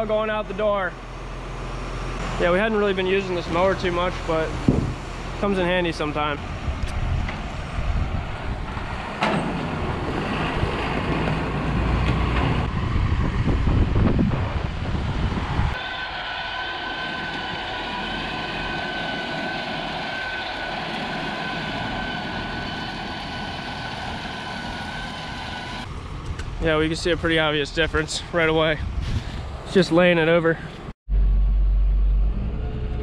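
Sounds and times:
tractor engine rumbling: 0.0 - 33.0
disc mower whine: 15.8 - 25.9.

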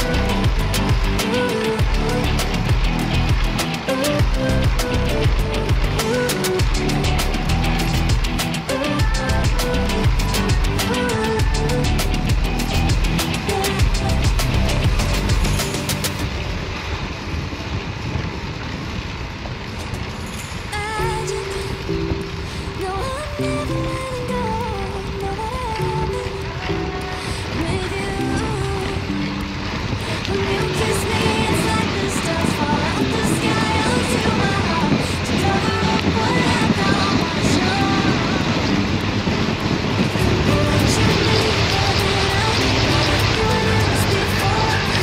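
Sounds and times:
wind rumble on microphone: 0.0 - 45.0.

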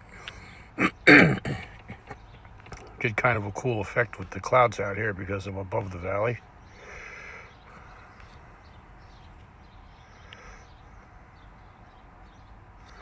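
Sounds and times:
faint outdoor background noise: 0.0 - 13.0.

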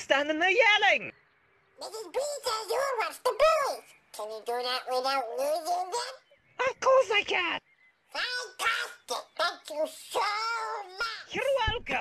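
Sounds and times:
person doing nasal duck voice: 1.8 - 3.4, 4.1 - 6.2, 8.1 - 11.5.

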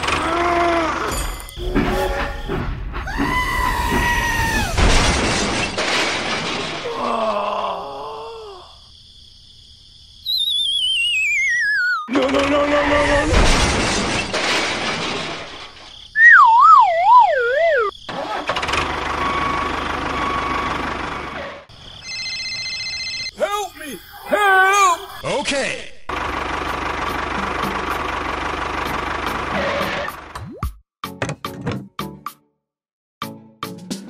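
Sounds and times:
falling warbling whistle: 10.2 - 12.1, 16.2 - 17.9
wobbling slide whistle: 10.2 - 12.1, 16.2 - 17.9
squeaky voice-like sounds: 16.2 - 17.9.

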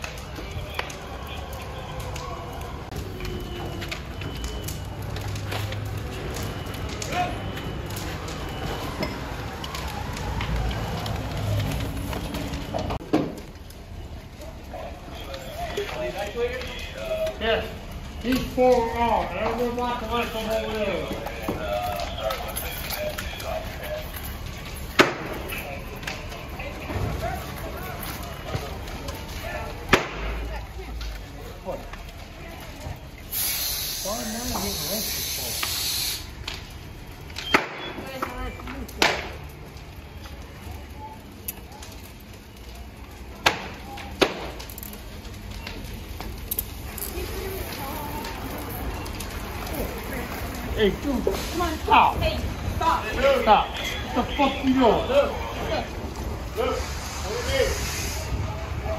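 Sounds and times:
fire cracking: 0.0 - 58.9
fire rumbling: 0.0 - 58.9
hissing water spray: 33.2 - 36.4, 56.6 - 58.6.

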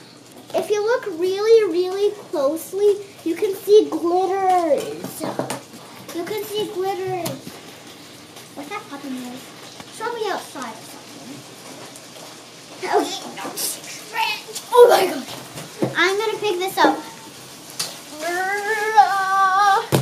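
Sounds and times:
girl's voice: 0.5 - 5.5, 6.1 - 7.5, 12.8 - 17.3, 18.1 - 20.0.

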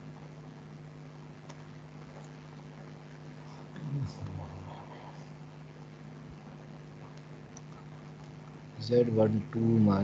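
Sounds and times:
steady low hum: 0.0 - 10.0
man humming low: 3.5 - 5.3.

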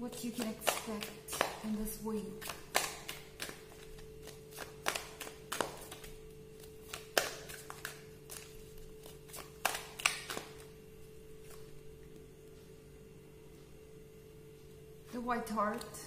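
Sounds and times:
cards shuffling and clicking: 0.2 - 10.7.

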